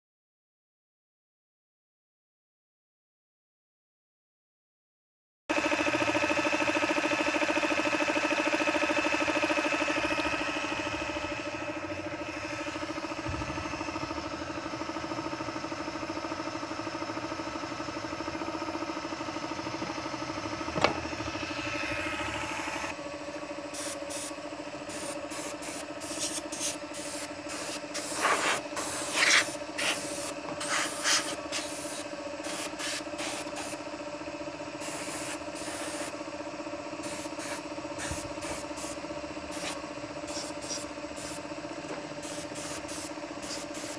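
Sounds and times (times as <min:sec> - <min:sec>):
air compressor humming: 0:05.5 - 0:43.9
air hissing bursts: 0:23.7 - 0:24.3, 0:24.9 - 0:33.8, 0:34.8 - 0:36.1, 0:37.0 - 0:41.4, 0:42.2 - 0:43.9.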